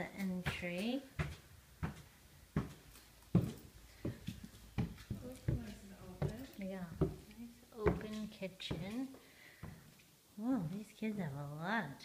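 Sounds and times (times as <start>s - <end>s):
footsteps on wooden stairs: 0.0s - 10.0s.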